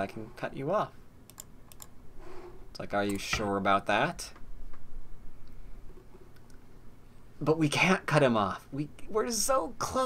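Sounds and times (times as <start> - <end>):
computer mouse clicks: 1.3 - 2.0, 6.3 - 6.6
person speaking: 2.7 - 4.4.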